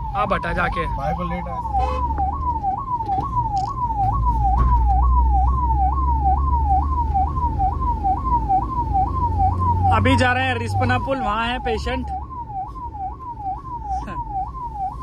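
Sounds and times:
ambulance siren: 0.0 - 15.0
van engine rumbling: 0.0 - 15.0.

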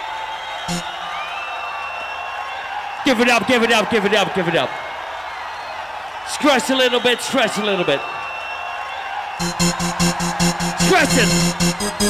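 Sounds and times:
fast pounding techno beat: 0.7 - 0.9, 9.4 - 12.0.

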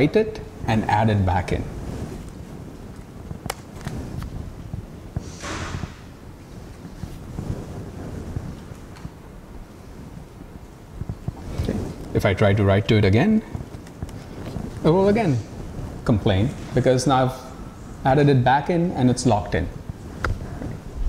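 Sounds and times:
low room rumble: 0.0 - 21.0
brief hiss: 5.2 - 6.1.

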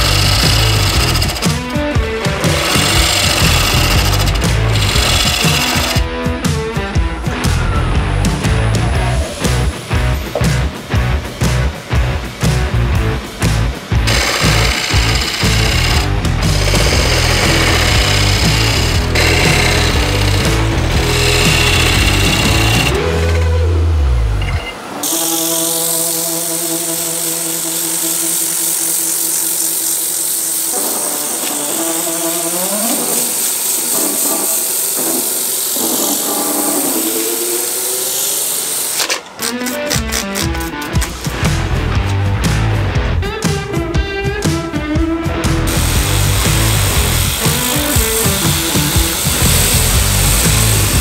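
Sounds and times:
power sanding hiss: 0.0 - 6.0, 14.1 - 23.1, 24.9 - 39.0, 45.6 - 51.0
wood lathe hum: 0.0 - 6.0, 14.1 - 23.7, 24.4 - 39.2, 45.7 - 51.0
rock music with guitar: 0.0 - 25.0, 39.3 - 51.0.

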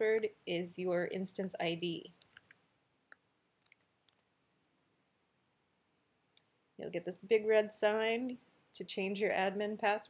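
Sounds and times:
keyboard and mouse clicks: 2.2 - 4.3.

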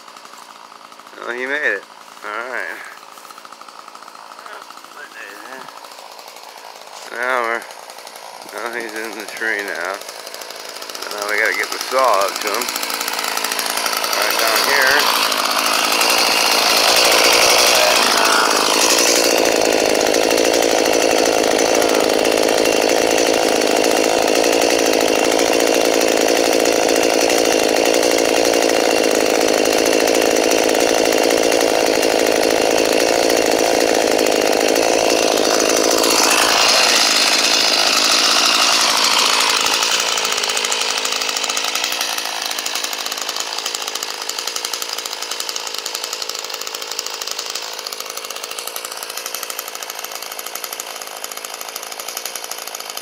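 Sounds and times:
chainsaw idling: 0.0 - 53.0
small engine running: 0.0 - 53.0.

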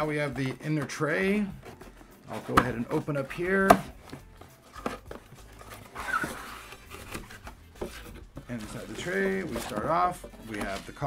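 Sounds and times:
cardboard rustle: 0.0 - 11.0
cardboard flap clicks and scrapes: 1.6 - 11.0.

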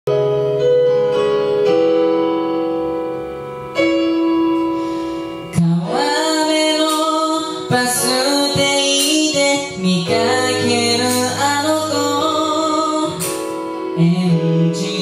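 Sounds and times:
piano chords: 0.1 - 15.0
young man singing: 5.5 - 15.0.

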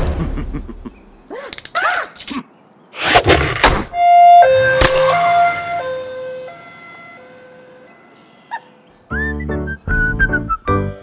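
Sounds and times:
cartoon two-tone siren: 4.0 - 8.6.

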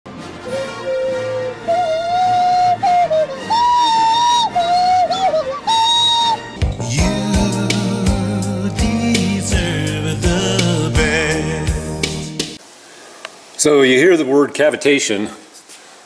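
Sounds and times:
sliding melody line: 0.1 - 12.6
bass: 6.6 - 12.6
drum beat: 6.6 - 12.6.

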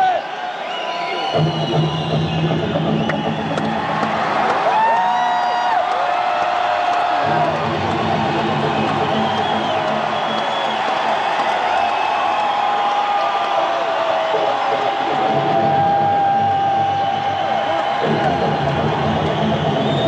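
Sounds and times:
crowd cheering and whooping: 0.0 - 20.0.

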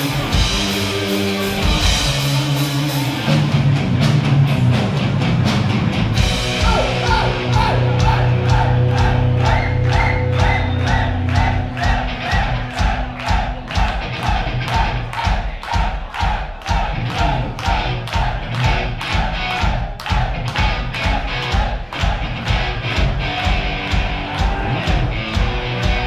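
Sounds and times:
heavy metal band playing live: 0.0 - 26.0
fast drum beat: 6.2 - 26.0.

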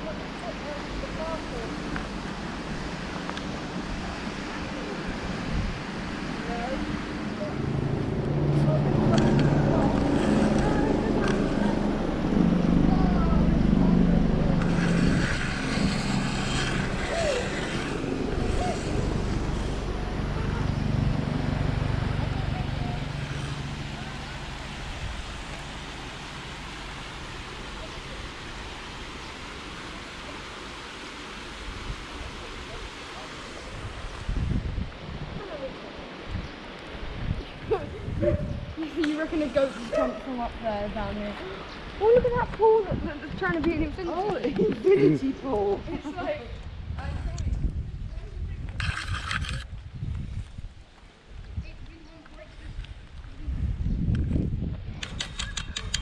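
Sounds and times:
wind noise: 0.0 - 27.6, 31.5 - 56.0
tyre and road hiss: 0.2 - 11.9, 14.5 - 44.1
motor vehicle passing: 5.4 - 31.2.

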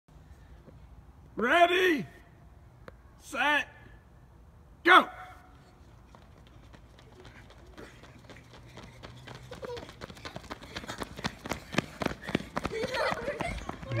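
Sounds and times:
children running on asphalt: 5.5 - 14.0.

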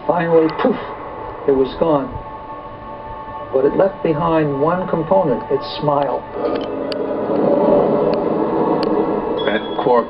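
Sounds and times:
rushing soundtrack drone: 0.0 - 10.0.

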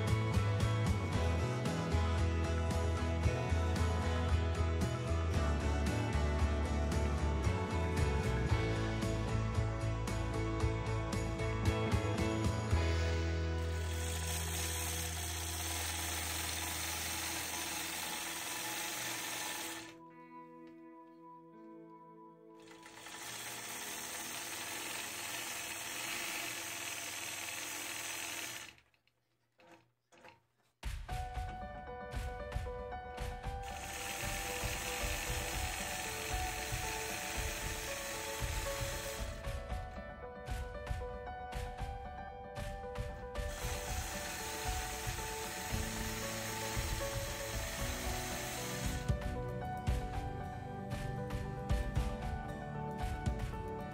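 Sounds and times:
background music: 0.0 - 26.8, 30.8 - 53.9
quilting machine stitching: 13.6 - 20.0, 22.6 - 30.4, 33.6 - 39.4, 43.4 - 49.2
quilting machine needle clatter: 22.6 - 30.5.

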